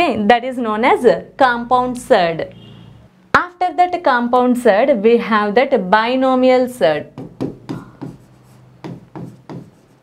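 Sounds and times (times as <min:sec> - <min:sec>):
stylus writing on a screen: 0:07.1 - 0:10.0.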